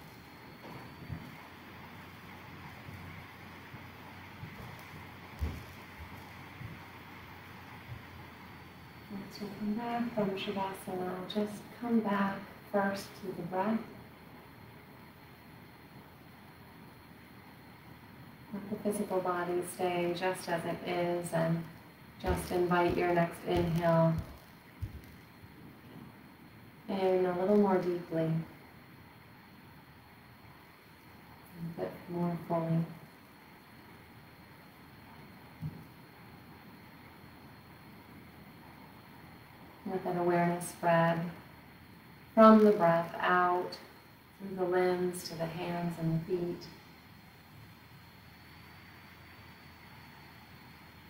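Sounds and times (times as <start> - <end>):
faint high whine: 0.0 - 51.0
steady low hiss: 0.0 - 51.0
soft low thumps: 3.8 - 8.3, 22.2 - 25.2
woman speaking: 9.1 - 14.0, 18.5 - 24.3, 26.9 - 28.5, 31.6 - 33.0, 39.8 - 41.4, 42.4 - 46.7.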